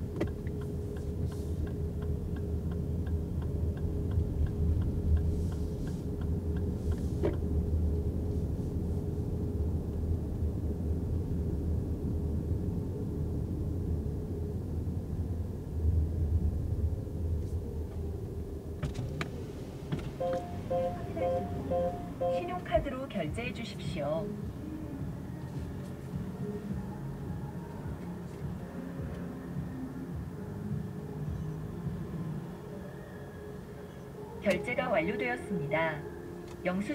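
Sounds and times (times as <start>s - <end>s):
faint steady hum: 0.0s - 36.9s
low rumble of tyres: 0.0s - 36.9s
light ticks: 0.1s - 7.5s.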